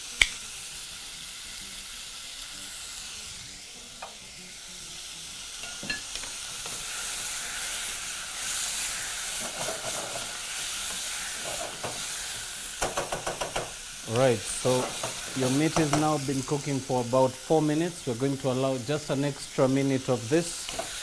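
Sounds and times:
beef sizzling in a pot: 0.0s - 21.0s.

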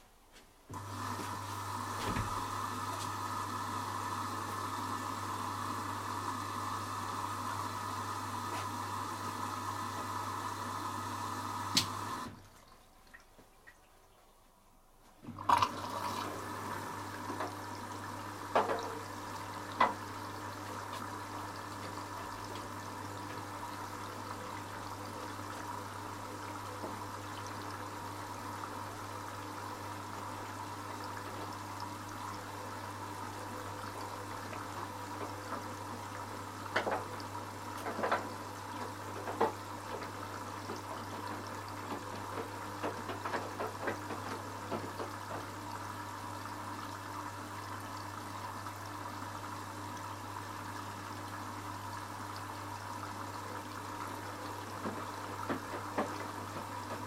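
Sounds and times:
water rushing into washing machine: 0.7s - 13.8s, 15.2s - 57.0s.

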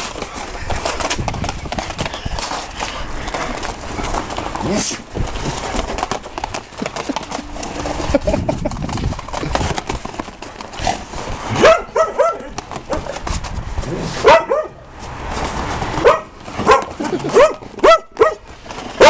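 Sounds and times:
dog boots clattering on brick: 0.0s - 13.6s, 15.7s - 19.0s
dogs barking: 11.5s - 13.2s, 14.2s - 14.8s, 16.0s - 19.0s.

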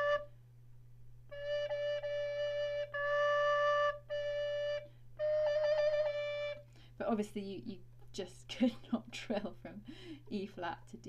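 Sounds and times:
recorder notes: 0.0s - 0.3s.

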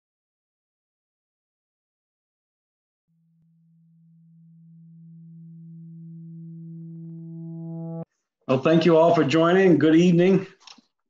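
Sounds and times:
low synthesizer note: 3.1s - 8.1s.

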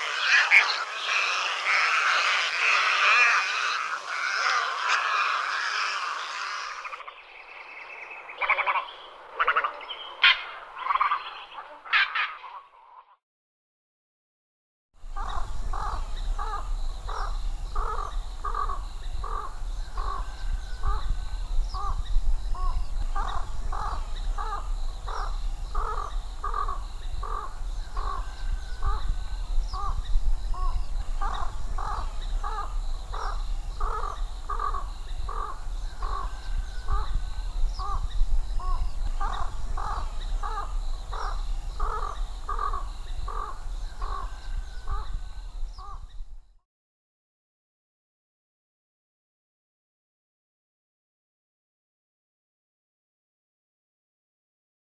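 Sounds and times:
harsh bird calls: 0.0s - 13.0s, 15.1s - 46.2s.

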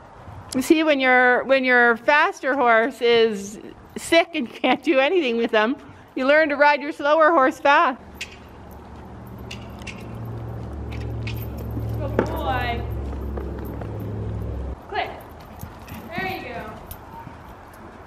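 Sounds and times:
horse hoofbeats on sand: 8.2s - 18.0s
steady low rumble: 9.3s - 14.8s.

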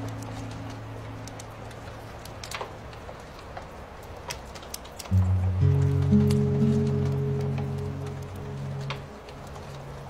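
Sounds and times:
campfire crackling: 0.0s - 10.0s.

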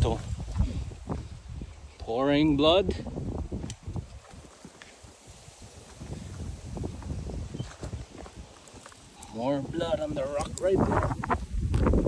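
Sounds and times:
footsteps crunching through dry grass: 0.0s - 12.0s
wind rumbling on microphone: 0.0s - 12.0s.

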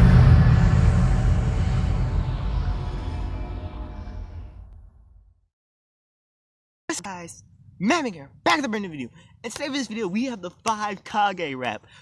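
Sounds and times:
deep bass boom: 0.0s - 5.4s.

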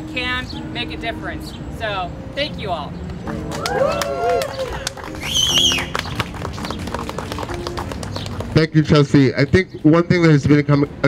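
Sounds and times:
crowd applauding: 3.2s - 8.9s.

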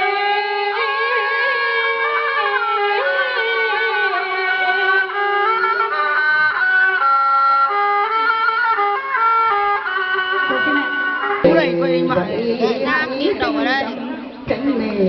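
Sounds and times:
instrumental melody: 0.0s - 15.0s
person talking: 10.5s - 15.0s.

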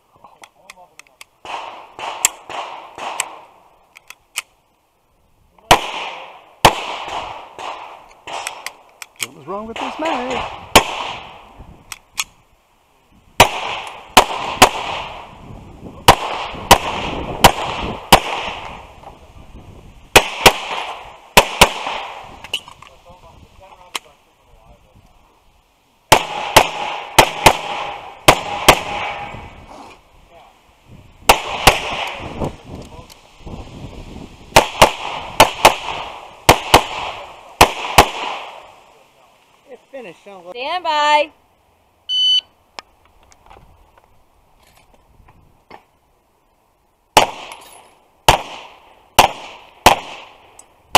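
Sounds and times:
pistol shots: 1.4s - 3.4s, 5.7s - 8.8s, 9.8s - 11.4s, 13.4s - 15.3s, 16.0s - 18.8s, 20.1s - 22.2s, 26.1s - 29.3s, 31.3s - 32.3s, 34.5s - 38.7s, 47.2s - 50.4s.

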